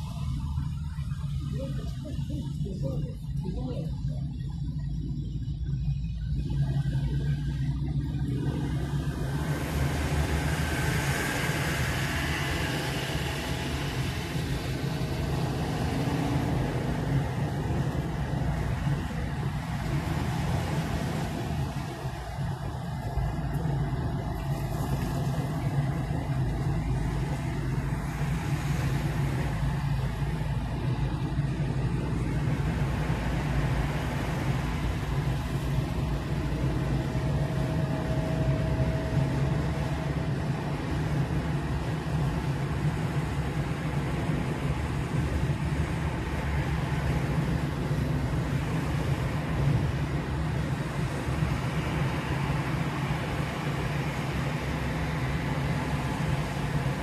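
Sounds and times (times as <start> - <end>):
car road noise from inside: 0.0 - 57.0.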